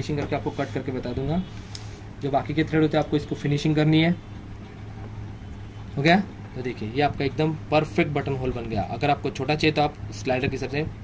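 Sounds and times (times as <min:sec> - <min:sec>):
person speaking: 0:00.0 - 0:01.6
steady low hum: 0:00.0 - 0:11.0.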